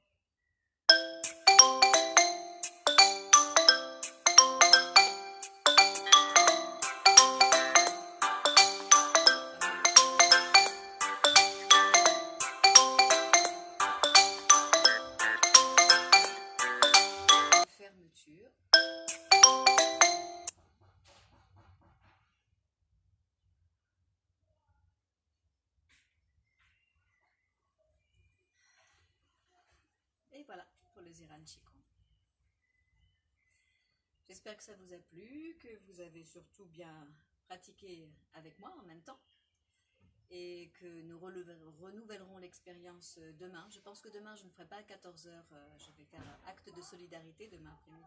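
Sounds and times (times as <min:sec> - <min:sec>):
mobile phone ringtone: 0:00.9 - 0:17.7, 0:18.8 - 0:20.5.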